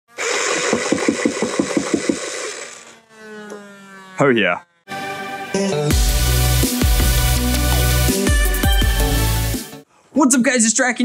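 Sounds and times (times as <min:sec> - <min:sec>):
toy blaster motor whir: 0:00.1 - 0:04.9.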